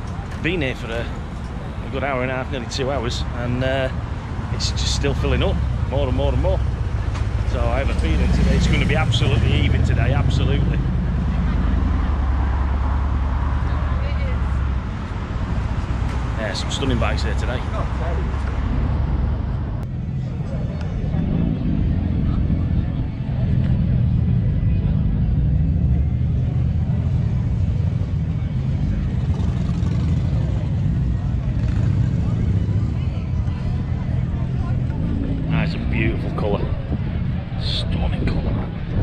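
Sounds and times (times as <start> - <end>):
crowd voices: 0.0 - 39.0
motorcycle engines rumbling: 0.0 - 39.0.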